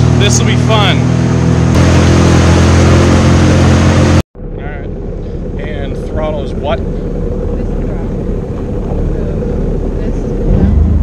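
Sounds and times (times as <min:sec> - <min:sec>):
jet ski engine: 0:00.0 - 0:11.0.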